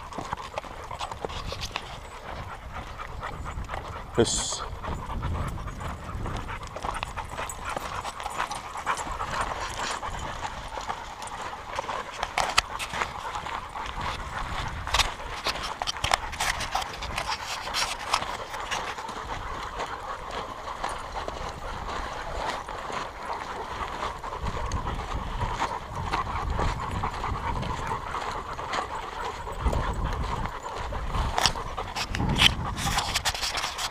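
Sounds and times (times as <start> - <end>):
dogs panting: 0.0 - 33.9
paws crunching on gravel: 0.0 - 33.9.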